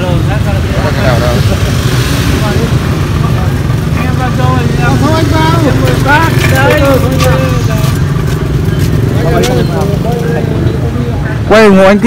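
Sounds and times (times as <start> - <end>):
men talking: 0.0 - 12.0.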